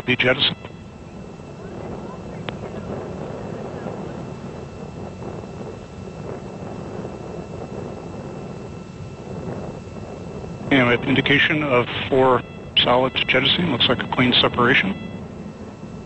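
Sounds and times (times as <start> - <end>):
distant rocket rumble: 0.0 - 16.0.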